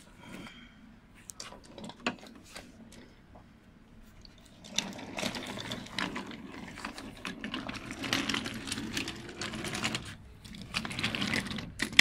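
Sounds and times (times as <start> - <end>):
wooden toy train rattling on track: 4.5 - 12.0.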